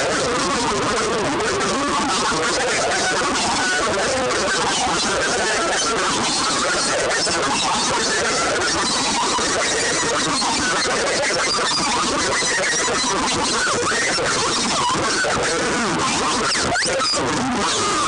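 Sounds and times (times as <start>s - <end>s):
electric guitar noise: 0.0s - 18.0s
squealing guitar notes: 0.0s - 18.0s.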